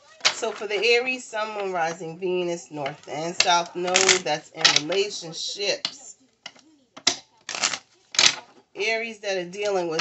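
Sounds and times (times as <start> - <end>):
woman speaking: 0.2 - 6.2, 8.8 - 10.0.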